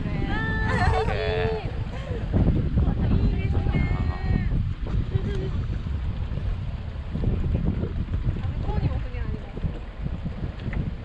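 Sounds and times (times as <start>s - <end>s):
boat engine running: 0.0s - 11.0s
water noise: 0.0s - 11.0s
wind buffeting microphone: 0.0s - 11.0s.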